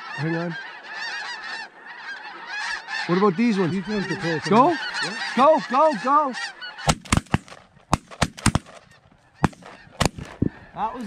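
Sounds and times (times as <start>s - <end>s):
shotgun blasts: 6.8s - 10.4s.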